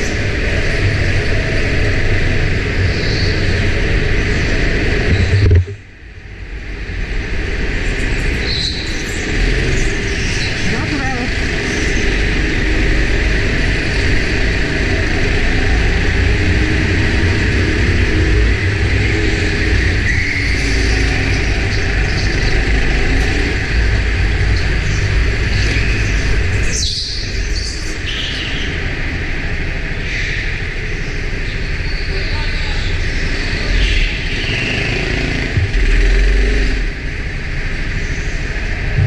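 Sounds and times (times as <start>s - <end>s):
go-kart engine droning: 0.0s - 39.0s.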